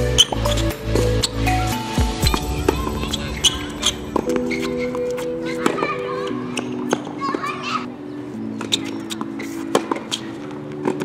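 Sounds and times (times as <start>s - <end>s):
slow sustained music chords: 0.0s - 8.7s.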